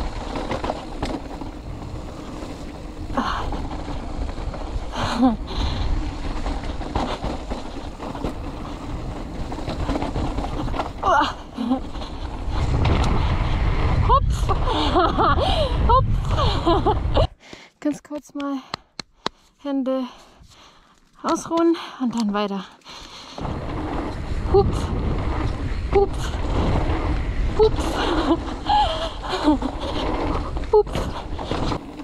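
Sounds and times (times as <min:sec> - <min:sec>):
bike tyres on gravel trail: 0:00.0 - 0:17.2, 0:20.2 - 0:32.0
wind rumbling on microphone: 0:00.0 - 0:17.3, 0:23.4 - 0:32.0.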